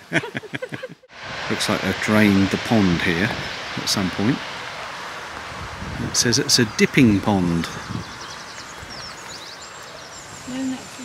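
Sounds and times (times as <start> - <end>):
outdoor background noise: 0.0 - 11.0
songbird chirping: 6.1 - 11.0.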